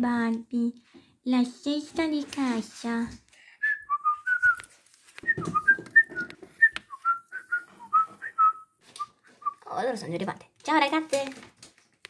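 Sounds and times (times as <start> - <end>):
whistled tune: 3.6 - 9.6.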